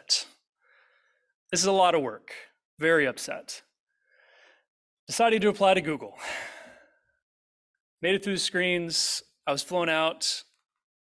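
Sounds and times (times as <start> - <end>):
man breathing into microphone: 4.0 - 4.7.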